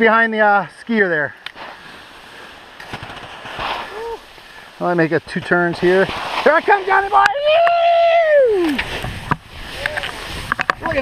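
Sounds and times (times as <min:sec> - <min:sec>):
skis scraping over snow: 0:00.7 - 0:11.0
person speaking: 0:04.8 - 0:08.7.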